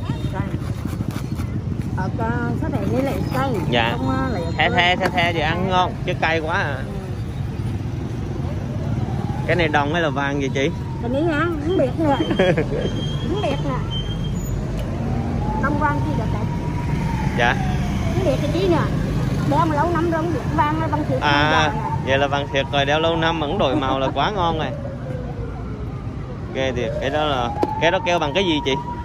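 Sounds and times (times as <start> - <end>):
motorcycle engine running: 0.0 - 3.9
passing vehicle engine: 0.0 - 29.0
road traffic rumble: 0.0 - 29.0.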